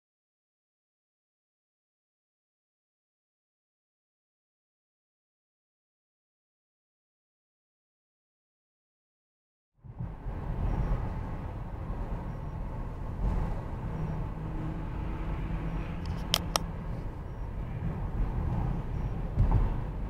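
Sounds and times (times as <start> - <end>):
car driving on wet road: 9.9 - 20.0
sharp clicks: 16.0 - 16.7.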